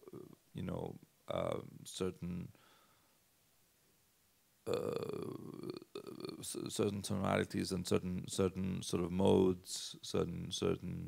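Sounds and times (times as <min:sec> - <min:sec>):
man saying uh hesitantly: 0:00.0 - 0:02.5.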